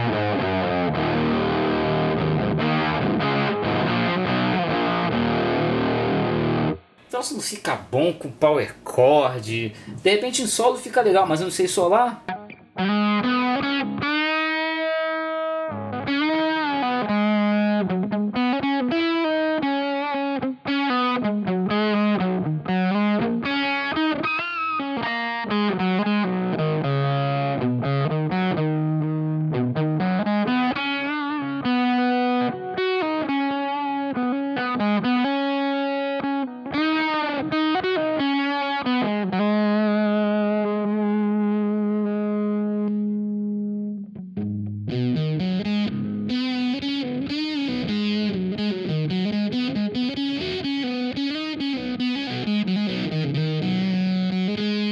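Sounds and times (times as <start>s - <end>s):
fuzzed electric guitar lead: 0.0s - 7.6s, 11.1s - 54.9s.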